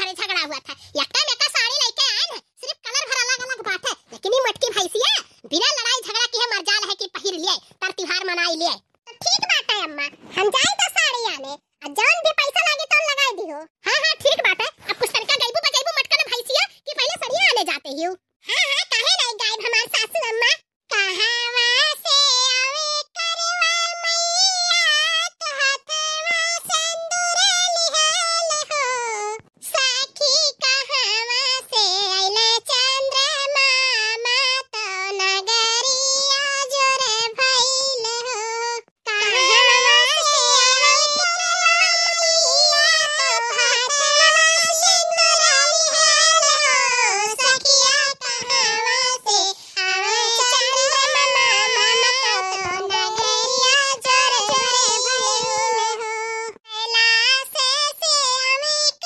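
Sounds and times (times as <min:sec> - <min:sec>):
high-pitched cartoon voice singing: 0:18.5 - 0:59.0.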